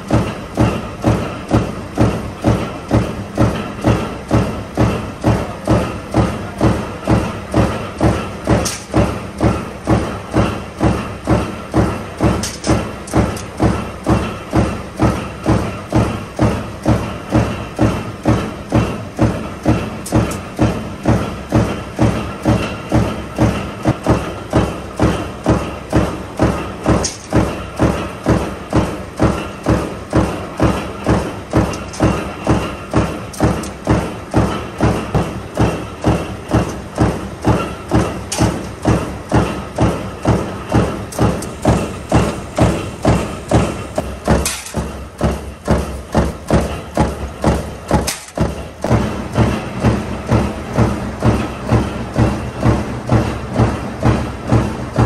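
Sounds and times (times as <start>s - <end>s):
machine drone: 0.0s - 55.0s
stamping press thumping: 0.0s - 55.0s.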